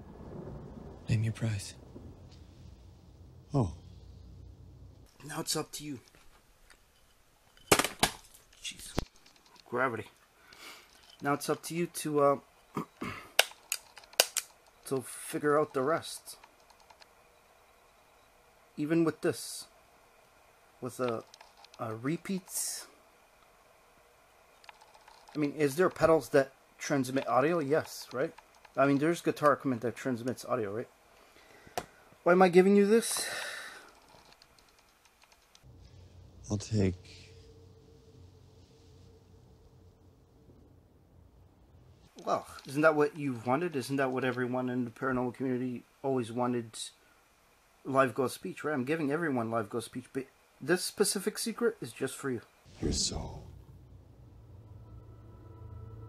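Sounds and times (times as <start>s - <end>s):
low hum: 0.0s - 7.7s, 35.6s - 42.1s, 52.7s - 56.0s.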